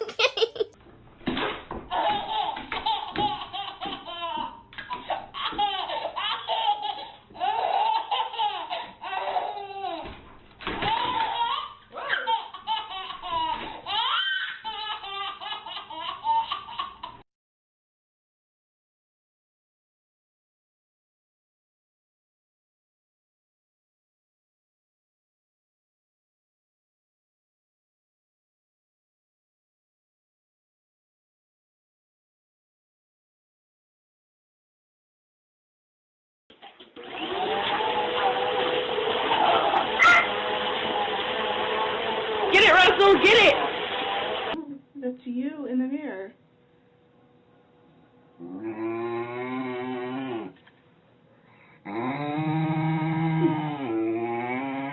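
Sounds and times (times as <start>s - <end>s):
toddler laughing and squealing: 0.0s - 0.8s, 1.9s - 10.1s, 10.8s - 17.1s, 39.5s - 40.4s
vacuum cleaner running: 37.0s - 44.6s.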